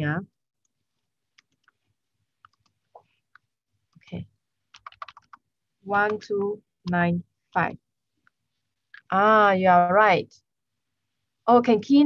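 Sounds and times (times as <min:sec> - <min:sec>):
computer clicks: 0:02.4 - 0:07.0
keyboard keystrokes: 0:04.7 - 0:05.4.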